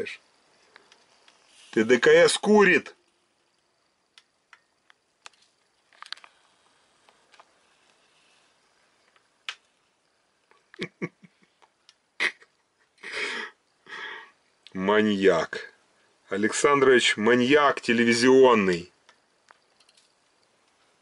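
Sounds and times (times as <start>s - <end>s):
electrical snaps and crackles: 0.7s - 8.0s, 9.0s - 10.9s, 19.0s - 21.0s.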